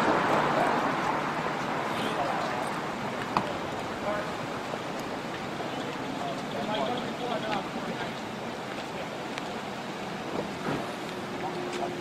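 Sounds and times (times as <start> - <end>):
faint distant voices: 0.0 - 12.0
traffic noise: 0.0 - 12.0
wind: 0.0 - 12.0.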